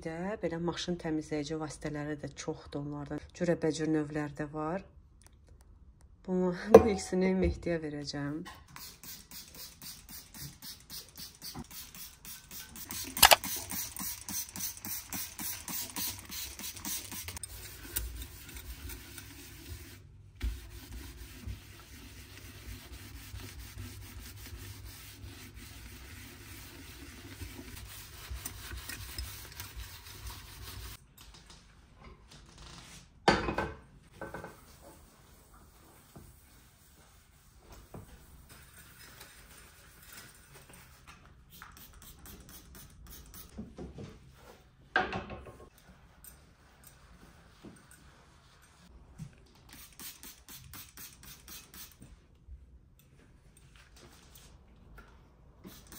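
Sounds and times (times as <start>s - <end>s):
spray bottle squirts: 10.6s - 17.3s, 49.7s - 52.0s
sponge scrubbing metal: 17.2s - 31.0s.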